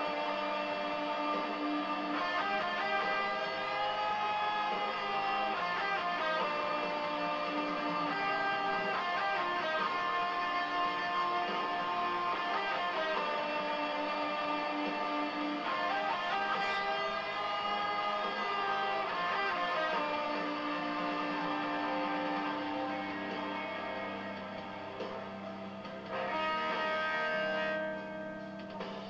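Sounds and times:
electric guitar playing: 0:00.0 - 0:29.0.

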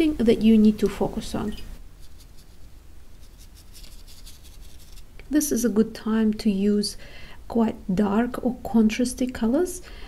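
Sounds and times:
brush stroking on paper: 0:01.8 - 0:05.1.

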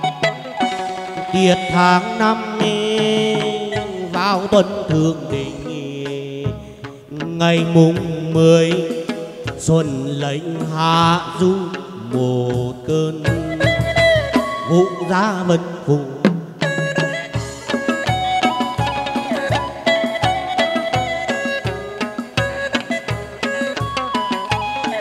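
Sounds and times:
plucked lute melody: 0:00.0 - 0:15.2, 0:16.4 - 0:25.0.

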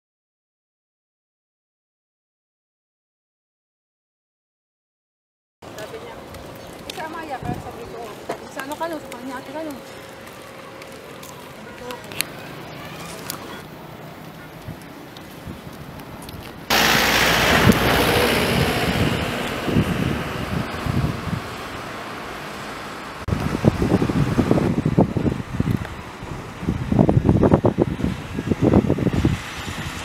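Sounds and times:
wind buffeting microphone: 0:05.8 - 0:11.0, 0:14.1 - 0:30.0
low rumbling gusts: 0:14.1 - 0:30.0
rushing hiss: 0:16.7 - 0:23.3.

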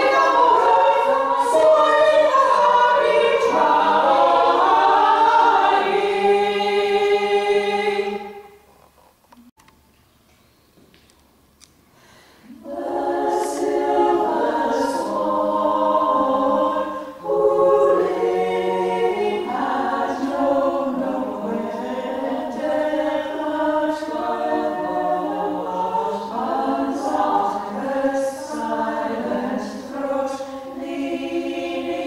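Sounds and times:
women's choir singing a cappella: 0:00.0 - 0:08.6, 0:12.5 - 0:32.0.

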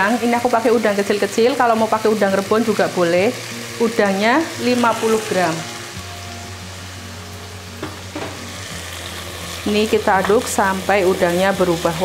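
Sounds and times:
shrimp frying in oil: 0:00.0 - 0:12.0
knock on pot: 0:07.8 - 0:08.4.

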